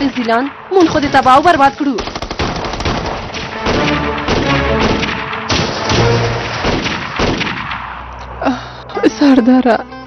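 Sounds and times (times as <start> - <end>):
rifle shots: 0.0 - 8.2.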